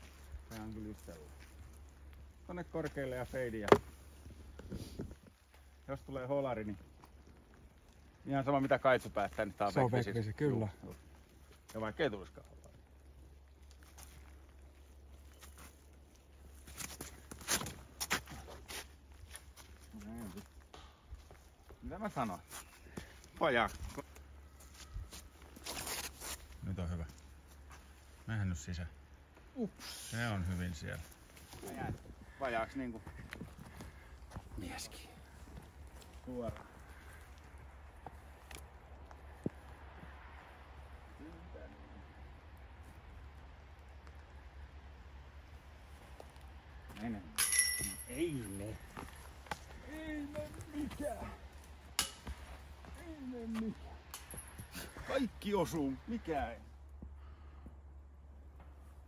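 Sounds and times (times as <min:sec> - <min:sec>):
footsteps on forest floor: 0:00.0 - 0:05.9, 0:13.2 - 0:28.3, 0:30.6 - 0:40.1, 0:48.1 - 0:57.7.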